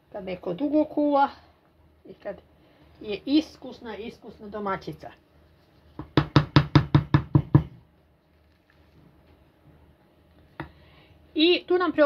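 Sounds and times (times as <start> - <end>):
utensil knocking against bowl: 6.0 - 7.8.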